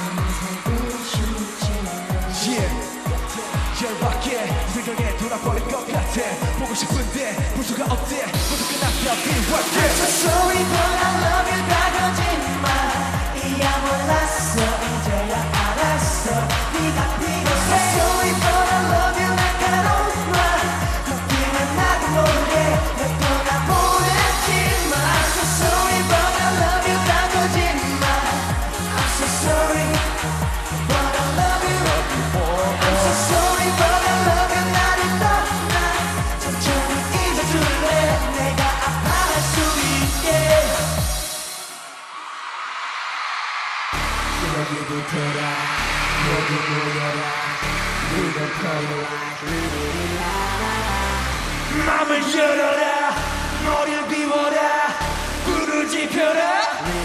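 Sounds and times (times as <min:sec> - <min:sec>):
male voices singing: 0:00.0 - 0:41.4, 0:44.4 - 0:57.0
dance-pop backing track: 0:00.0 - 0:57.0.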